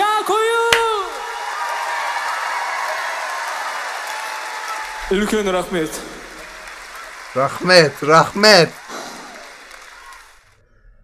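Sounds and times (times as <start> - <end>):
concert audience applauding: 0.7 - 10.6.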